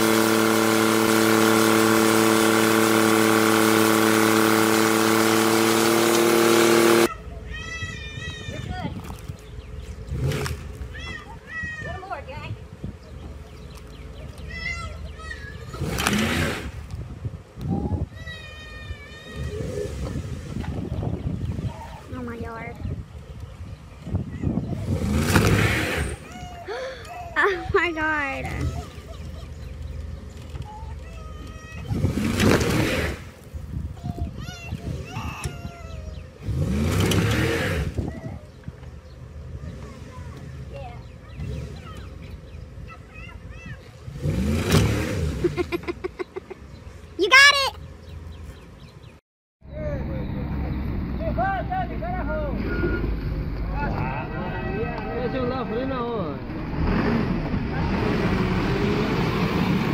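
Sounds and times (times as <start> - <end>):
truck engine revving: 0.0 - 7.1, 9.2 - 11.0, 13.2 - 17.1, 19.3 - 22.5, 24.6 - 26.4, 31.8 - 33.5, 36.2 - 38.2, 39.0 - 42.9, 43.9 - 46.4, 47.3 - 59.9
truck engine running under load: 0.0 - 7.1.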